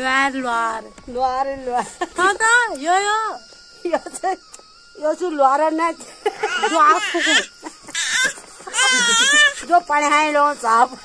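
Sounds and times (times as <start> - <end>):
baby squealing: 6.4 - 9.7.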